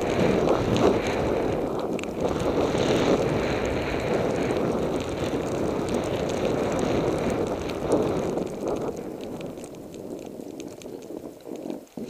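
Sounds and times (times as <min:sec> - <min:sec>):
snowboard sliding through powder: 0:00.0 - 0:12.0
wind rushing over microphone: 0:00.0 - 0:12.0.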